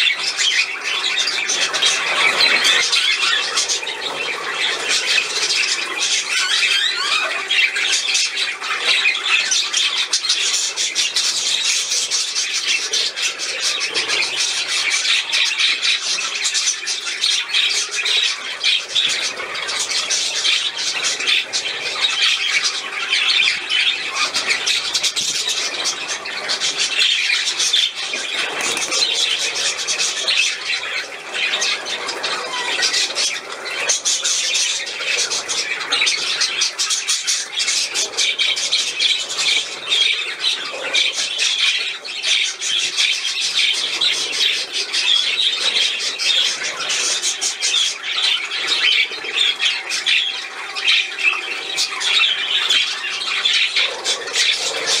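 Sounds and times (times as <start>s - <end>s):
budgerigars chattering: 0.0s - 55.0s.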